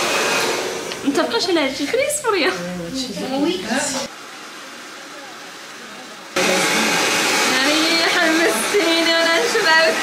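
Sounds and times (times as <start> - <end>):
hair dryer blowing: 0.0 - 2.4, 3.4 - 10.0
woman speaking: 1.0 - 4.1, 7.4 - 10.0.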